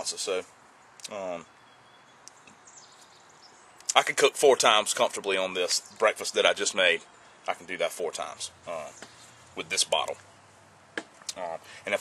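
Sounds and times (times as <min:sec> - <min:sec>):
man speaking: 0:00.0 - 0:01.5, 0:03.9 - 0:09.0, 0:09.6 - 0:10.2, 0:11.3 - 0:12.0.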